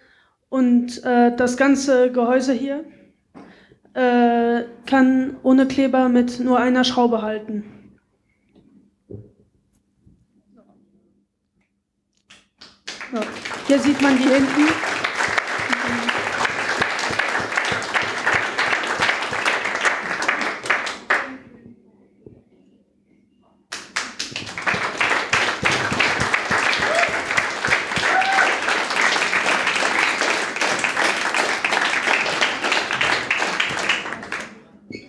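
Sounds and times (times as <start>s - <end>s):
audience applauding: 12.7s - 21.4s, 23.7s - 34.6s.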